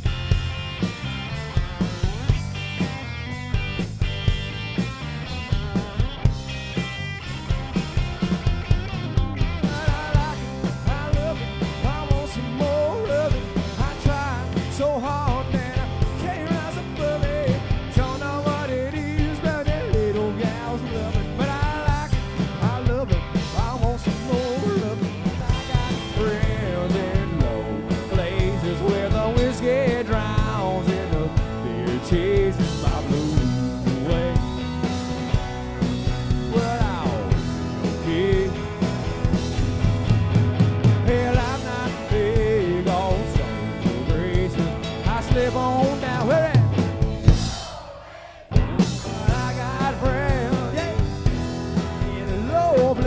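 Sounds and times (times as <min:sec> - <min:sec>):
lead guitar bent notes: 0:00.0 - 0:29.0
country rock band playing: 0:00.0 - 0:53.0
drums beat: 0:00.0 - 0:53.0
person singing: 0:09.6 - 0:34.8, 0:36.5 - 0:38.9, 0:41.0 - 0:46.8, 0:49.0 - 0:51.2, 0:52.0 - 0:53.0.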